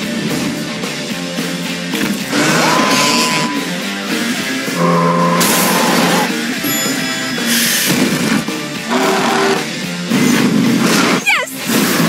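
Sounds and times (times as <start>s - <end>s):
trailer music: 0.0s - 12.0s.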